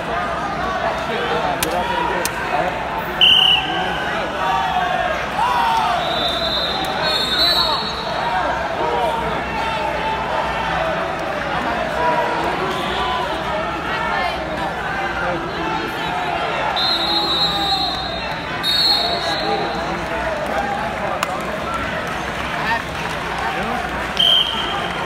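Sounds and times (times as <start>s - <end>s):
voices echoing in a hall: 0.0s - 25.0s
referee whistle blasts: 3.2s - 4.0s, 5.8s - 8.1s, 16.7s - 19.7s, 24.2s - 24.9s.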